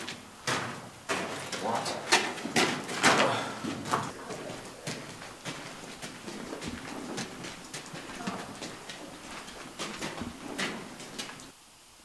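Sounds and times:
echoing footsteps on hard floor: 0.0s - 11.5s.

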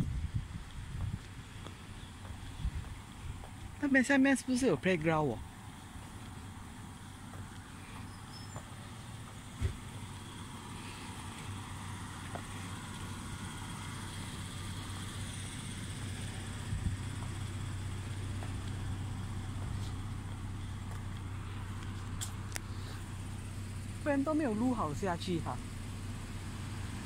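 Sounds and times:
low rumble of traffic: 0.0s - 27.0s.

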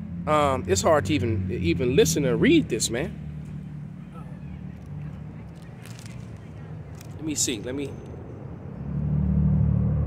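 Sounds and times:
urban background hum: 0.0s - 10.0s.

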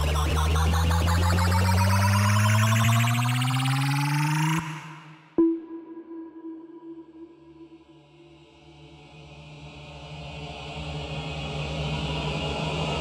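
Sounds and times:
rising synth sweep: 0.0s - 6.6s.

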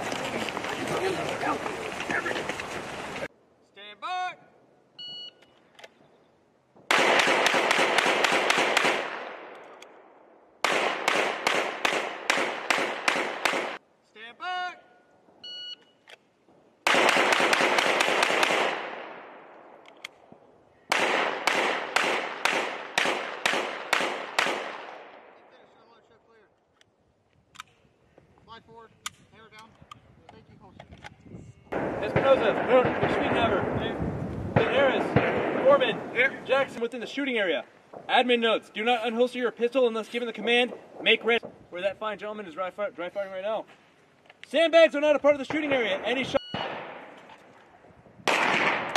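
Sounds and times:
short electronic beeps: 5.0s - 5.5s, 15.4s - 16.0s, 46.3s - 46.7s
rapid pistol fire: 6.9s - 9.5s, 10.6s - 13.8s, 16.8s - 19.3s, 20.9s - 25.2s, 31.8s - 33.8s, 34.6s - 36.1s, 48.3s - 48.9s.

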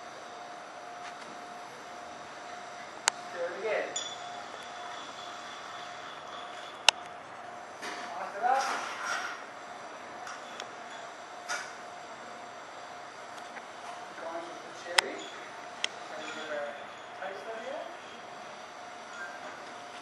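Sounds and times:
glass ringing ping: 3.9s - 7.2s
glassware clinking: 3.9s - 7.2s.

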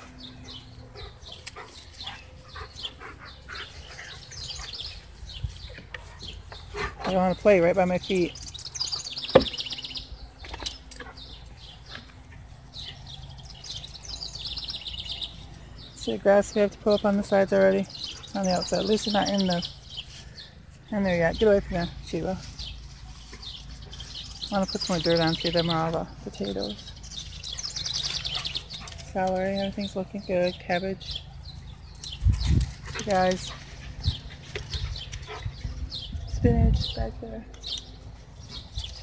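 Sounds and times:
songbirds trilling and chirping: 0.0s - 39.0s.

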